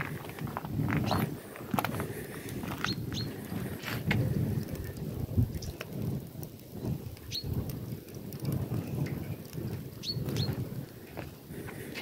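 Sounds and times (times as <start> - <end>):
fire crackling and popping: 0.0 - 12.0
fire low rumble: 0.0 - 12.0.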